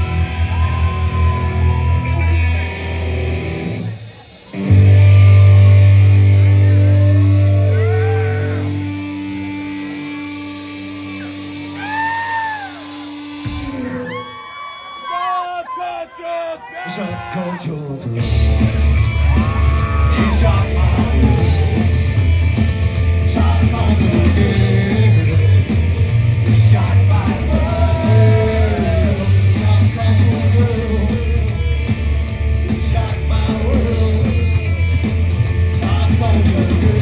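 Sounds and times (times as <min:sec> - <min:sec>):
live rock band playing: 0:00.0 - 0:15.0, 0:18.0 - 0:37.0
shouted vocals: 0:04.5 - 0:09.0, 0:13.6 - 0:18.1, 0:18.7 - 0:22.1, 0:26.6 - 0:31.9
people shouting: 0:07.0 - 0:08.9, 0:11.7 - 0:17.8, 0:18.8 - 0:22.0.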